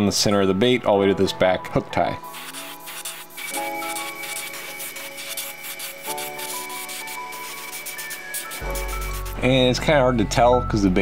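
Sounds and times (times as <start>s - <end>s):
background music with chords: 0.0s - 11.0s
airbrush spraying hiss: 2.3s - 9.4s.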